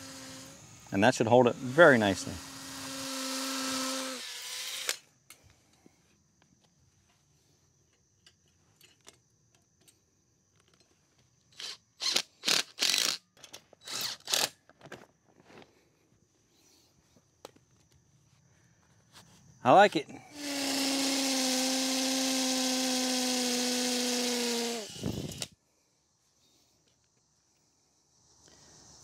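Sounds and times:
hammer drill boring into concrete: 1.4 - 5.0, 11.6 - 13.2, 13.8 - 14.5, 20.3 - 25.5.

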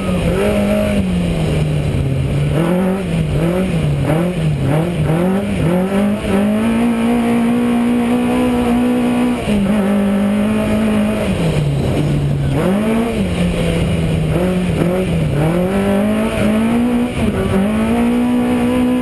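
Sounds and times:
race car engine revving: 0.0 - 19.0.

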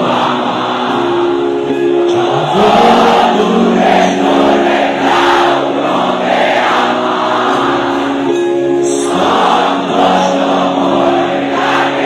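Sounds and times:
crowd singing along: 0.0 - 12.0
live band playing pop song: 0.0 - 12.0.

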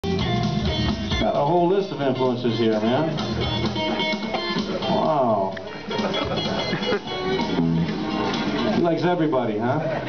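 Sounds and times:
electric guitar through amplifier: 1.9 - 8.8.

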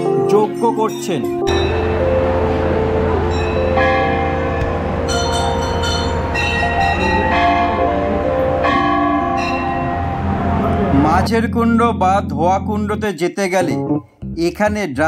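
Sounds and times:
temple bells ringing: 0.8 - 11.3
steady low hum: 1.5 - 11.3.

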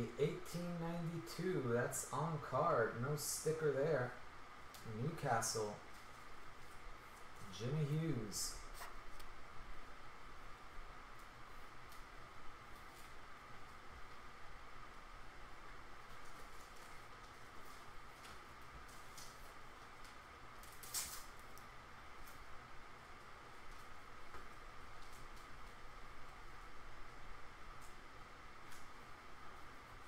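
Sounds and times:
steady low hum: 0.0 - 30.0
plastic sleeves crinkling: 16.0 - 22.5.

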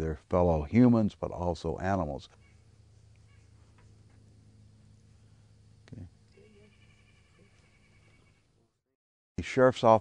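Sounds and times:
faint animal call: 2.3 - 3.8, 5.9 - 8.7.

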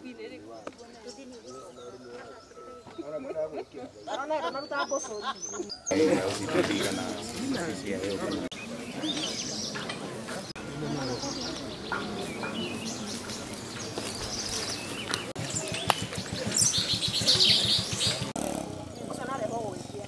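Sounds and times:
birds chirping: 0.0 - 20.0
murmur of crowd voices: 0.0 - 20.0.

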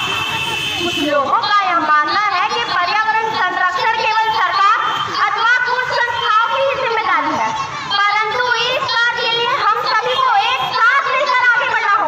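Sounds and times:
girl speaking into a microphone: 1.3 - 12.0.

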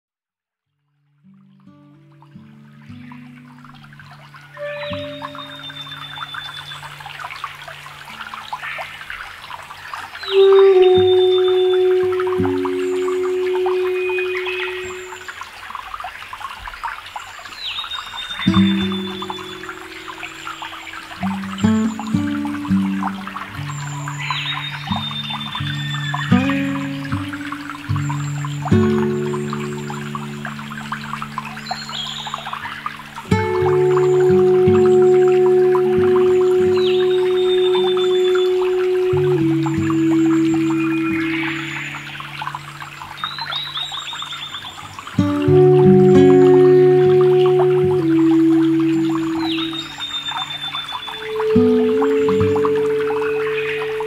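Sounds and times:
trickling stream: 0.6 - 54.0
high held tone: 4.6 - 6.8, 10.2 - 15.4, 33.4 - 42.2
synth drone notes: 10.3 - 15.3.

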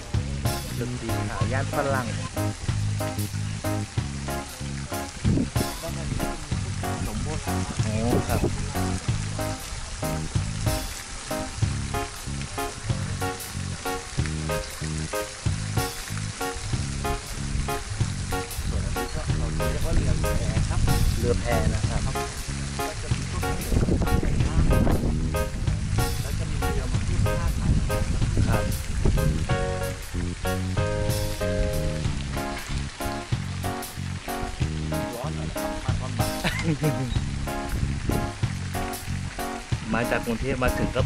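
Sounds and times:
music playing: 0.0 - 41.0
person speaking: 0.4 - 2.6, 5.6 - 9.1, 18.7 - 28.8, 39.8 - 41.0.

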